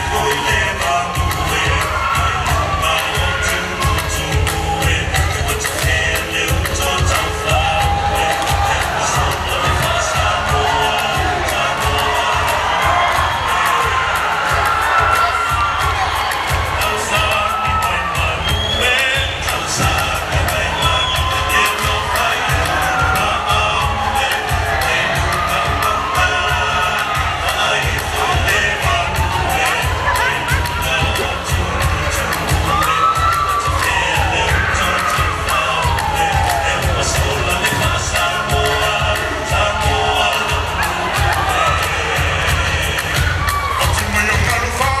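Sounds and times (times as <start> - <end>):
audience cheering and whooping: 0.0 - 45.0
fast percussion beat: 0.0 - 45.0.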